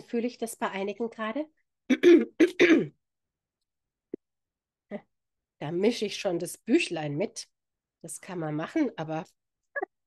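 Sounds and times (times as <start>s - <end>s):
woman clearing her throat: 1.9s - 3.0s.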